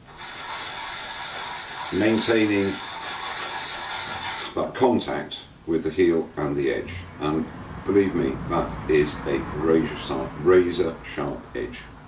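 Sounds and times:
honing card rasping on steel: 0:00.1 - 0:04.6.

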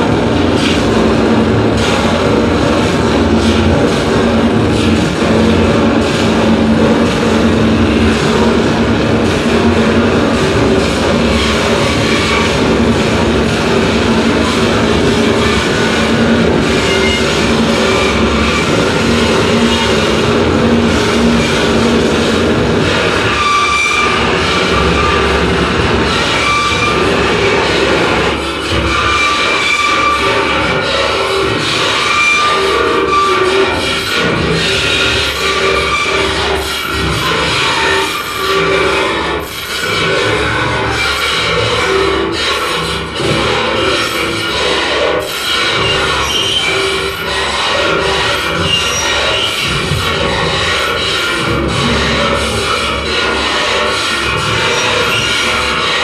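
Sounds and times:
distorted electronic noise: 0:00.0 - 0:56.0.

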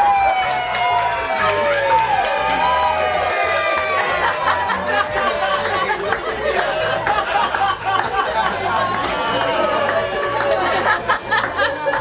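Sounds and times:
many people talking: 0:00.0 - 0:12.0
music with steady bass beat: 0:00.0 - 0:12.0.

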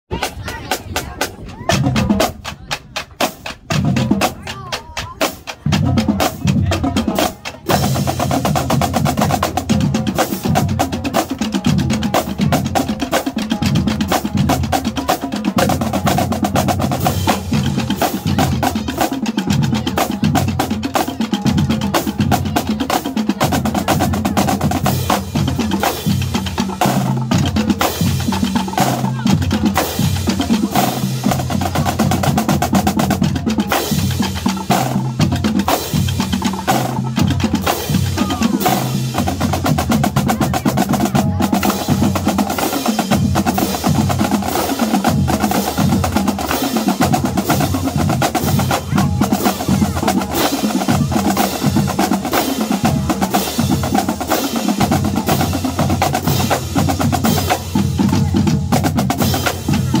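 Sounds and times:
bass drums: 0:00.1 - 1:00.0
marching snare drums: 0:00.1 - 1:00.0.

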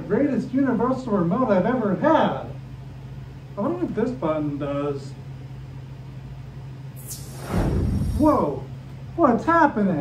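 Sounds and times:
falling high sweep: 0:07.0 - 0:08.6
loud low rumble: 0:07.2 - 0:08.6.

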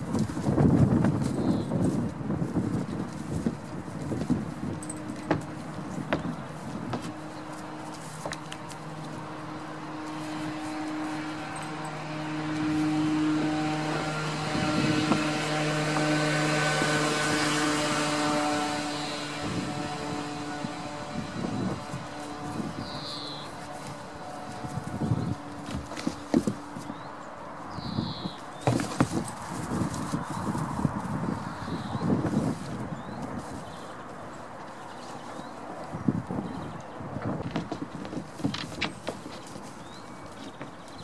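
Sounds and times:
engine hum: 0:00.0 - 0:41.0
goat hooves on wooden boards: 0:00.0 - 0:41.0.

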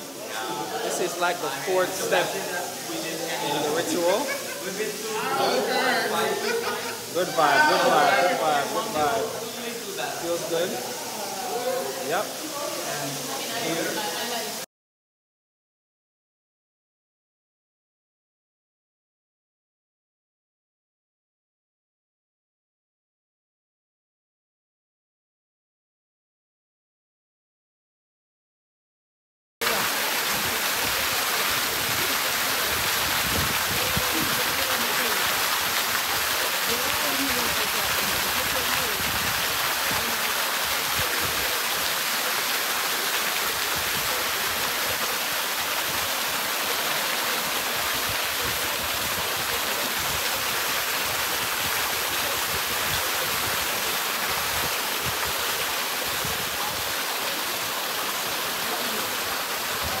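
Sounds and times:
waterfall splashing into pool: 0:00.0 - 0:14.7, 0:29.6 - 1:00.0.

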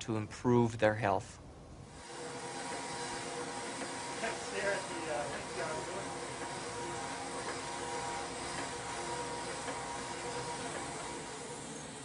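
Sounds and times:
exercise machines whirring: 0:01.9 - 0:12.0.

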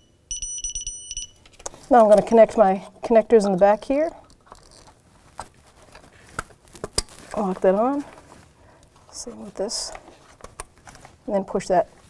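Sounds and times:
plastic connector handled: 0:03.3 - 0:08.4.

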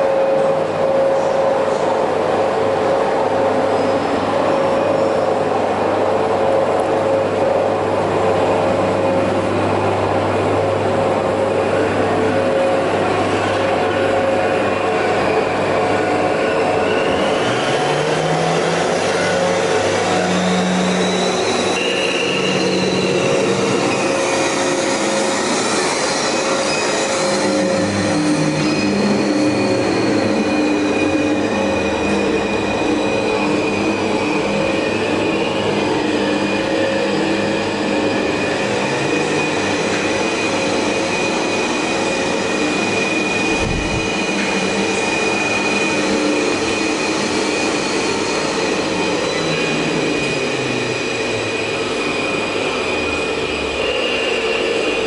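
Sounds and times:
steady high whistle: 0:16.5 - 0:55.0.

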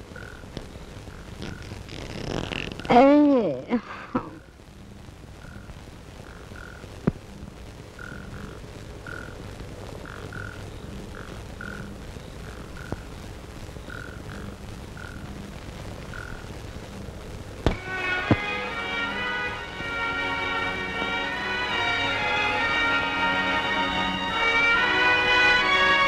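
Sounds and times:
frogs croaking: 0:00.0 - 0:03.1, 0:03.7 - 0:26.0
faint background hum: 0:00.0 - 0:26.0.

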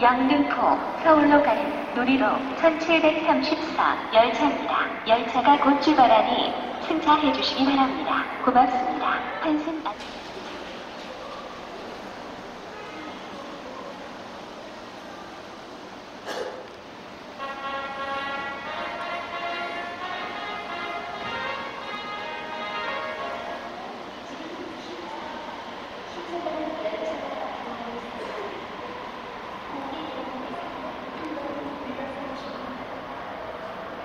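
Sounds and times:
announcement voice over loudspeakers: 0:00.0 - 0:11.7
platform background noise: 0:00.0 - 0:34.0.

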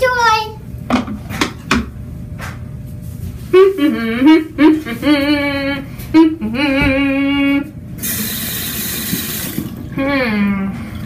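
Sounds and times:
tap water running into sink: 0:08.0 - 0:09.9.

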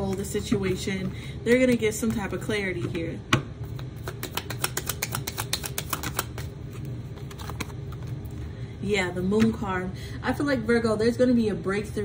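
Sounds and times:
cards being shuffled: 0:03.7 - 0:08.2.

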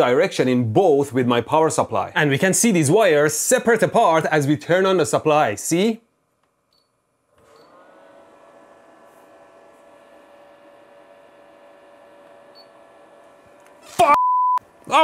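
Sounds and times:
power supply humming with whine: 0:06.7 - 0:14.9.

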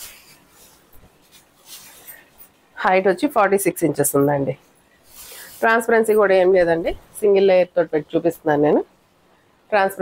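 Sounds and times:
silk fabric rustling: 0:00.0 - 0:07.1.

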